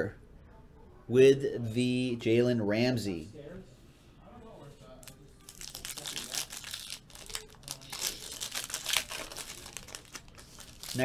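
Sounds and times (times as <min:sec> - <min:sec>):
foil pack crinkling and tearing: 0:05.0 - 0:11.0.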